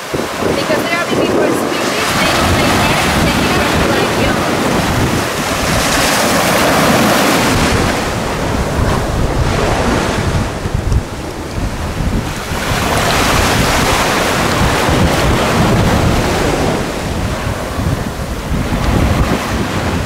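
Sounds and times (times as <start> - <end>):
small waves washing onto sand: 0.0 - 20.0
wind buffeting microphone: 0.0 - 20.0.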